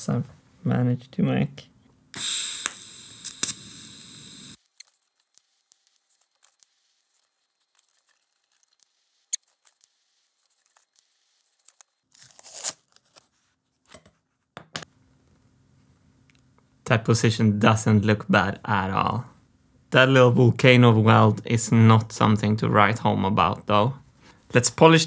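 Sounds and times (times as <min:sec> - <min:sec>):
welding arc crackling and hissing: 0:02.1 - 0:10.8.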